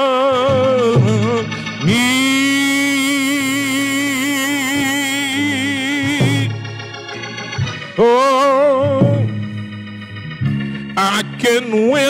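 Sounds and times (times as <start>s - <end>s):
man singing high held note: 0.0s - 6.5s.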